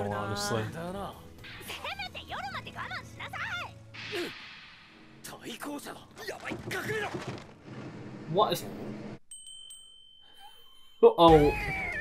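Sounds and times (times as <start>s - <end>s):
high steady ringing tone: 9.2s - 11.3s.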